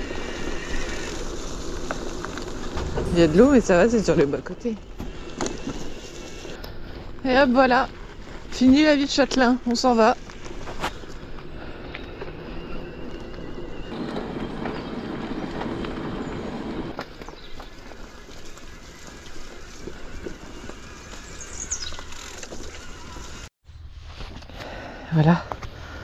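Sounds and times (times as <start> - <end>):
bike tyres rolling on trail: 0.0 - 23.5.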